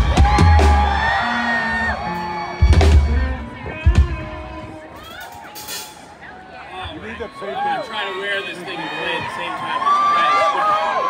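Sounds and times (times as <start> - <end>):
rock band playing loud hits: 0.0 - 4.8
crowd whooping and cheering: 0.0 - 11.0.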